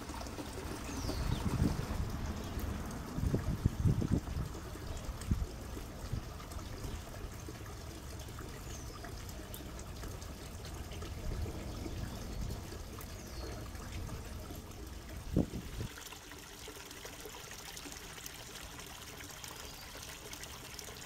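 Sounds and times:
water trickling over pebbles: 0:00.0 - 0:21.0.

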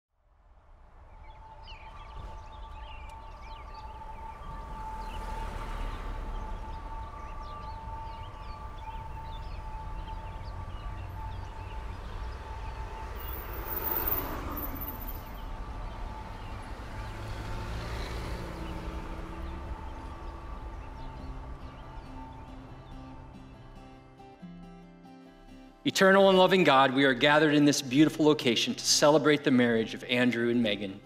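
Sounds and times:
low traffic rumble: 0:00.3 - 0:23.8
birds chirping: 0:01.0 - 0:24.4.

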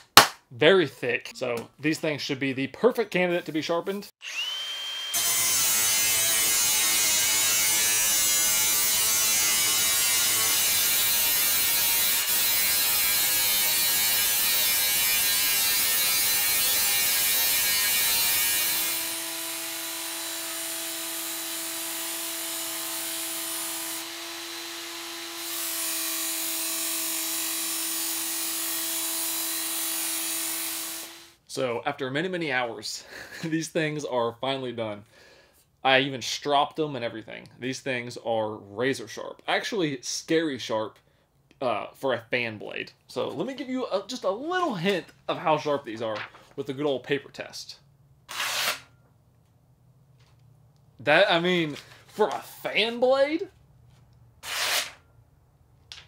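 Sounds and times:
angle grinder grinding metal: 0:04.2 - 0:31.4
belt sander humming: 0:18.2 - 0:31.4.

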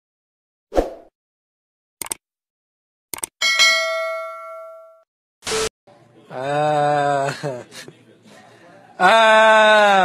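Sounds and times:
quick clicks: 0:02.0 - 0:02.2, 0:03.1 - 0:03.3
bell ding: 0:03.4 - 0:05.0.

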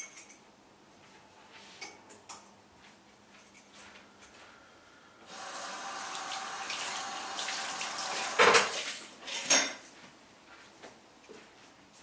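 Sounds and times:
tap running into sink: 0:06.0 - 0:09.0.

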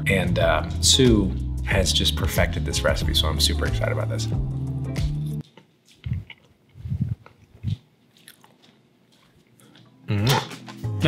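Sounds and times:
person chewing: 0:05.4 - 0:11.0
faint mouth noise: 0:05.9 - 0:08.6, 0:10.1 - 0:10.7.

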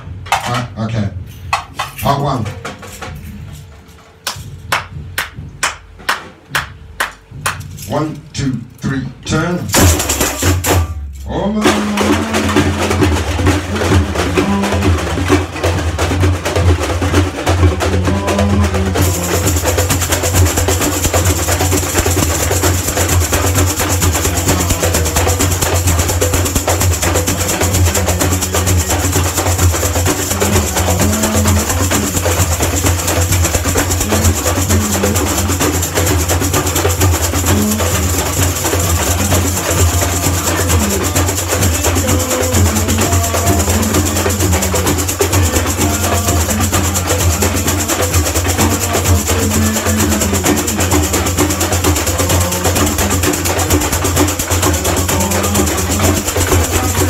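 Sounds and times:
surdo bass drums: 0:00.0 - 0:57.0
jingle shakers rattling: 0:09.7 - 0:57.0.

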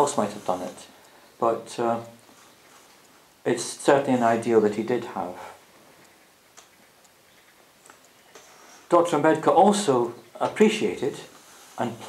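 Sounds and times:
faint clicks: 0:05.0 - 0:12.0.

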